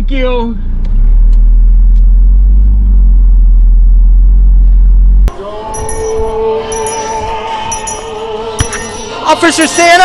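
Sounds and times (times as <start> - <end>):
car rumble inside cabin: 0.0 - 5.3
music with jingle bells: 5.6 - 10.0.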